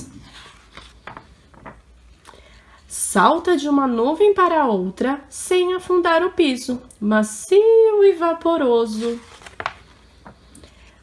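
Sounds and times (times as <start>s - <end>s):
book page rustling: 0.2s - 2.2s, 8.8s - 10.6s.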